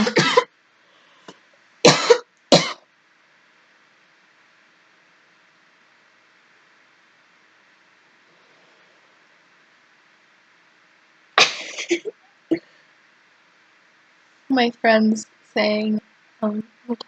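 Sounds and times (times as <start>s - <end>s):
person coughing: 0.0s - 0.5s, 1.9s - 2.8s, 11.4s - 12.1s
faint room hiss: 0.0s - 17.0s.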